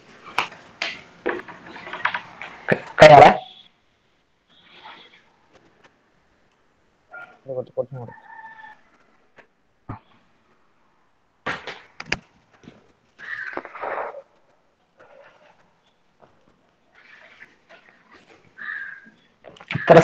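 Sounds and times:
short animal calls: 13.2 - 14.3, 16.9 - 20.0.

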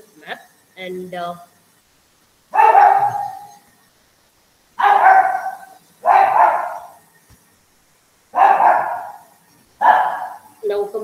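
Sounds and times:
dog barking: 2.5 - 3.6, 4.8 - 7.0, 8.3 - 10.5.

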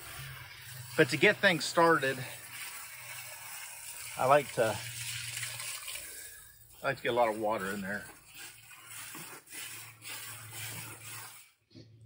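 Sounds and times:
hose spraying water on leaves: 0.0 - 11.6.

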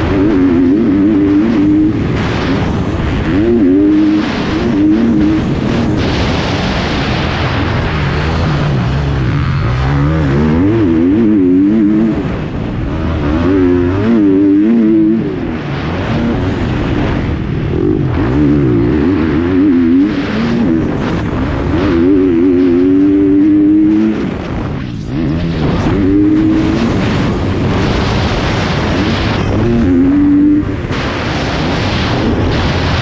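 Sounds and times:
motorbike engine revving: 0.0 - 33.0
wind rushing over microphone: 0.0 - 33.0.

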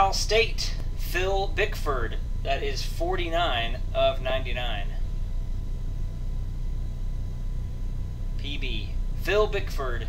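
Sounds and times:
faint high whine: 0.0 - 10.0
low room rumble: 0.0 - 10.0.

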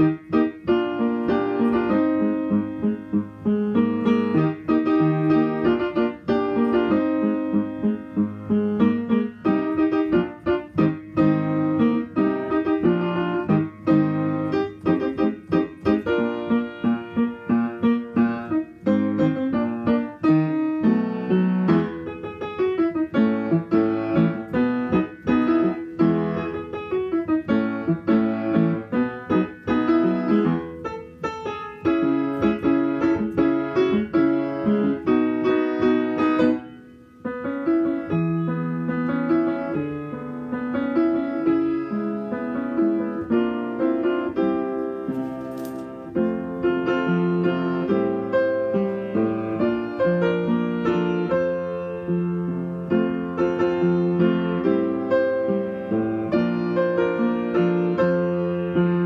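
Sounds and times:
solo upright piano playing: 0.0 - 59.0.

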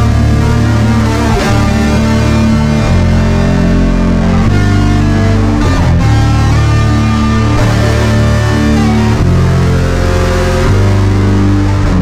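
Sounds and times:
heavy metal guitar and bass: 0.0 - 12.0.

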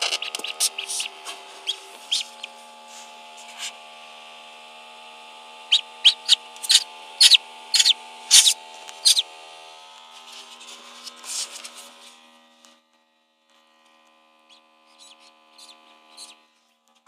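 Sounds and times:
steady hum: 0.0 - 11.7
duckling peeping: 0.1 - 2.5, 5.7 - 9.2, 14.9 - 16.4.

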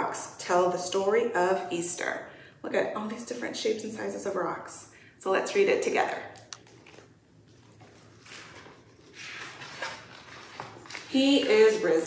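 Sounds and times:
book pages rustling: 6.4 - 12.0.

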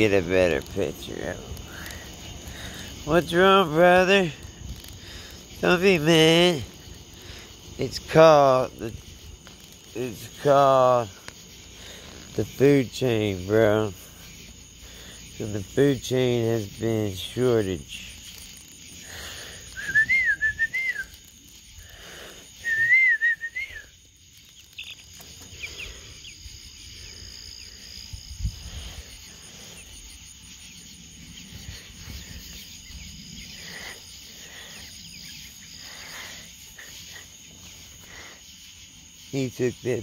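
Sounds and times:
crickets chirring: 0.0 - 40.0
warbling whistles: 17.9 - 21.7, 22.4 - 24.1.

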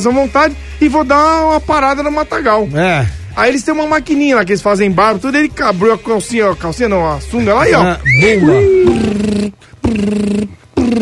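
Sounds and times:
man imitating trimmer buzzing: 7.7 - 11.0.

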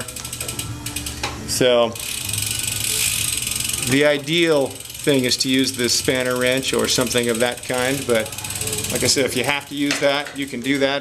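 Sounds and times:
bicycle freewheel ratcheting clicks: 0.0 - 11.0.

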